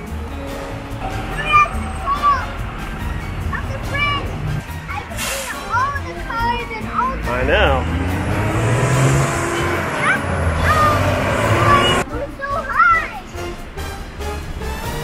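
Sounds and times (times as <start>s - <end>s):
cars passing: 0.0s - 15.0s.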